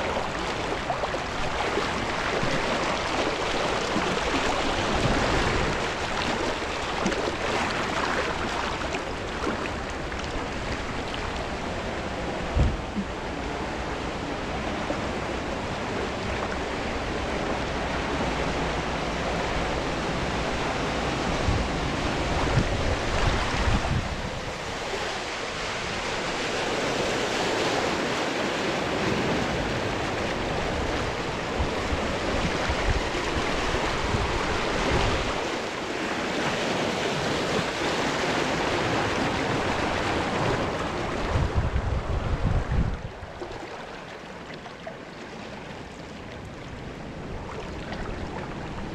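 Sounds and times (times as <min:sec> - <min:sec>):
water rushing and splashing: 0:00.0 - 0:48.9.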